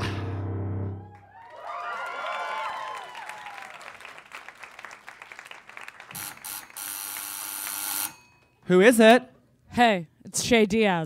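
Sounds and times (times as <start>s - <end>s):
audience cheering: 0.9s - 6.2s
audience clapping: 1.0s - 7.8s.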